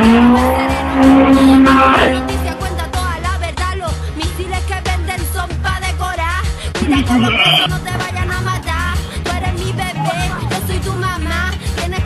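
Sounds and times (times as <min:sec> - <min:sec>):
car engine revving at full throttle: 0:00.0 - 0:03.6.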